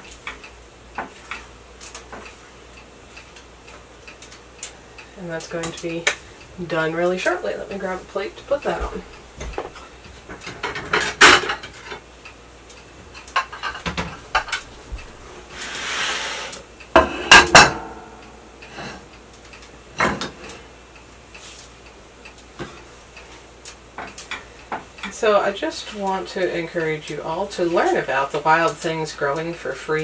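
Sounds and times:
plate scraping on counter: 15.5 - 17.8.

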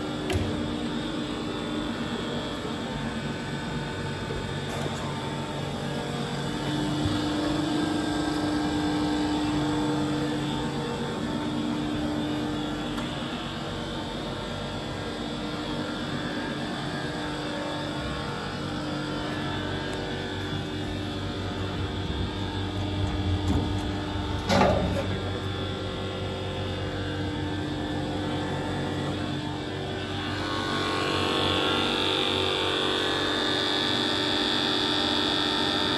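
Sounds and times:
grinder machine hum: 0.0 - 35.9
high machine whine: 0.0 - 35.9.

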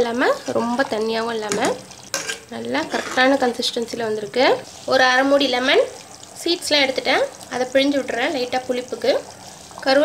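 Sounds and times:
woman talking: 0.0 - 1.8, 2.5 - 10.0
thick sauce simmering: 0.1 - 10.0
ladle stirring in pot: 0.3 - 6.4.

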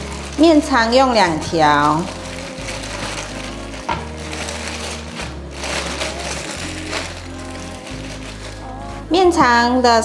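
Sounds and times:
plastic bag crinkling: 0.0 - 9.1
background music: 0.0 - 10.0.

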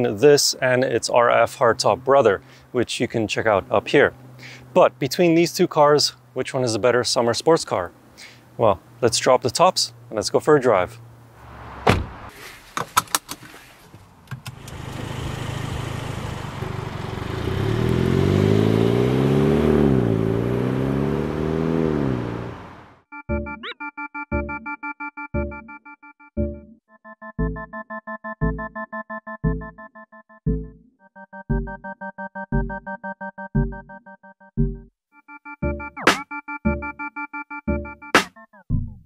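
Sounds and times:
thunks: 11.8 - 14.6
car engines accelerating: 14.5 - 23.0
electronic keyboard music with beat: 23.1 - 39.0.

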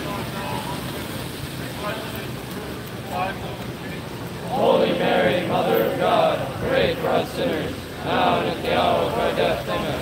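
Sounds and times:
faint indistinct voices: 0.0 - 10.0
traffic and tyres on wet road: 0.0 - 10.0.

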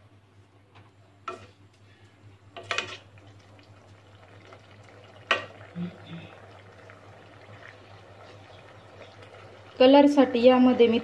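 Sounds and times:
spoon stirring in a pan: 1.2 - 1.6, 2.6 - 3.3
mixture bubbling: 1.3 - 11.0.

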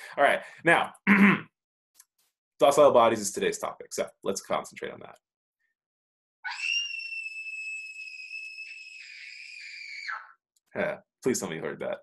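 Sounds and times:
child screaming: 6.5 - 10.3.

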